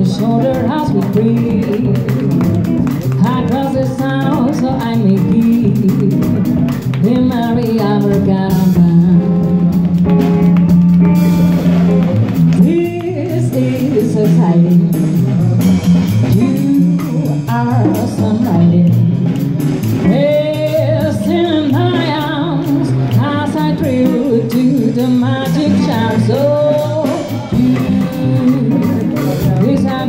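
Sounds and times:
woman singing: 0.0 - 2.4, 3.1 - 10.0, 12.5 - 19.3, 20.0 - 30.0
guitar accompaniment: 0.0 - 30.0.

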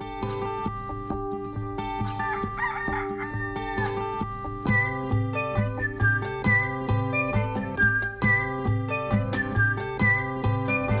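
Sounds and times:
plucked acoustic guitar music: 0.0 - 11.0
rooster crowing: 2.2 - 4.2.

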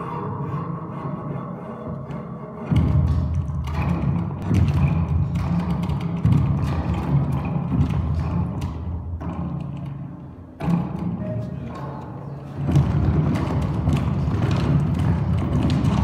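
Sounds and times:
knocks and thumps on wood: 3.7 - 9.6.

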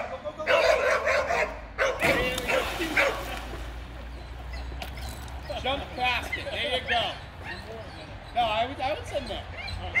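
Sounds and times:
dog barking and yipping: 0.5 - 3.2.

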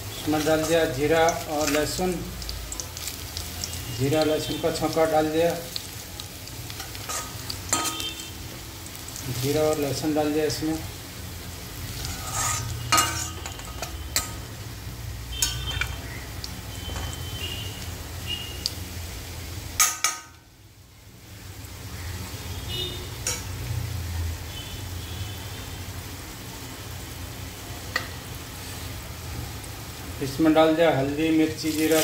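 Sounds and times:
seeds and garlic sizzling in oil: 0.0 - 32.0
spoon clinking and scraping pan: 0.3 - 2.0, 6.7 - 8.2, 12.0 - 14.5, 15.4 - 16.0.

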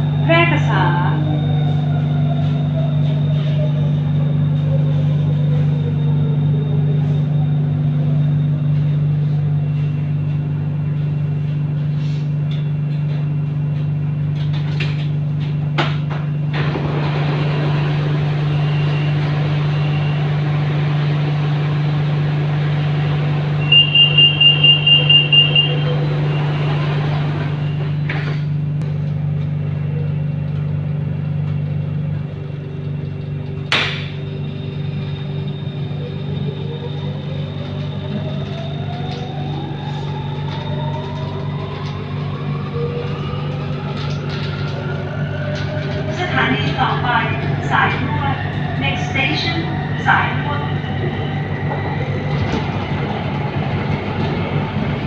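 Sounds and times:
train electrical hum: 0.0 - 55.0
door warning beeps: 23.6 - 28.3
train doors clunk shut: 33.7 - 34.3.

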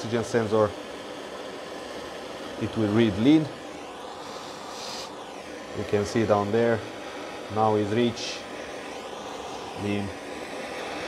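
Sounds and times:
breath blown hiss: 0.7 - 11.0.

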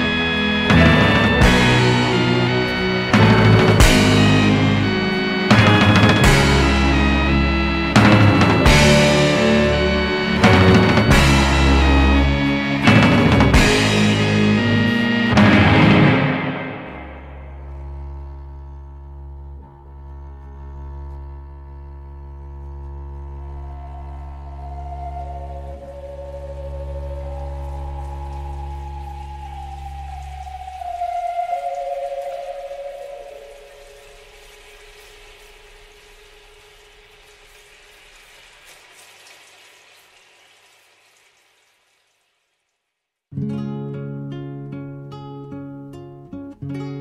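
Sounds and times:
orchestral music: 0.0 - 37.8.

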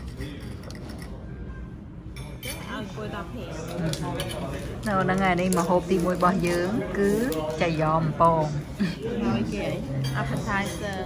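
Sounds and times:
voices at a table: 0.0 - 11.0.

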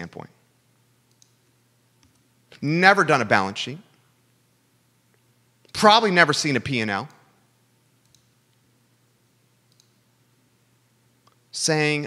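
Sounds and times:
faint low hum: 0.0 - 12.0
small faint clicks: 1.1 - 2.3, 8.0 - 8.6, 9.7 - 10.0.

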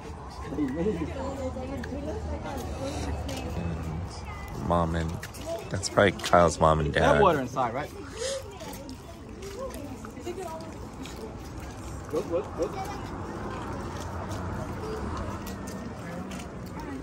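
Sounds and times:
background chatter of people: 0.0 - 17.0
low outdoor noise: 0.0 - 17.0.

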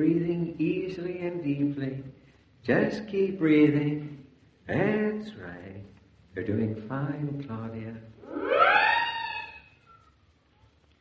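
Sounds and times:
gliding musical tone: 8.2 - 9.7.

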